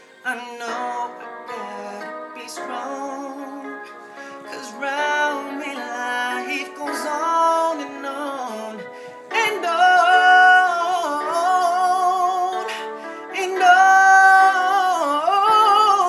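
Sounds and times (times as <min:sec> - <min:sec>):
man singing soulfully: 0:00.2 - 0:16.0.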